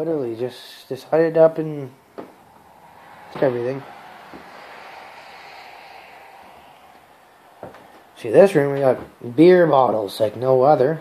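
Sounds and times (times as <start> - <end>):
steady rushing noise: 1.6 - 9.9.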